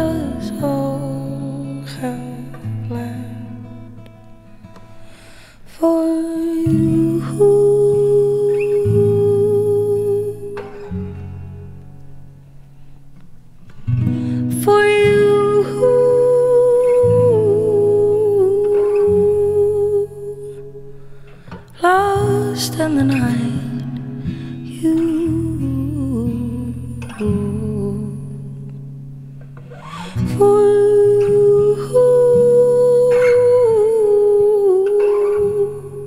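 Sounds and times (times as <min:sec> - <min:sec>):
woman singing wordless notes: 0:00.0 - 0:03.8, 0:05.7 - 0:11.4, 0:14.3 - 0:21.1, 0:21.7 - 0:28.8, 0:30.0 - 0:36.0
soft acoustic guitar chords: 0:00.0 - 0:36.0.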